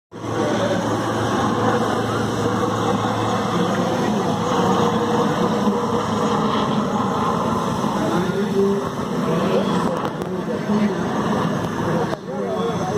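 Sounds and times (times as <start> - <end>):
crowd chatter: 0.1 - 12.9
helicopter drone overhead: 0.1 - 12.9.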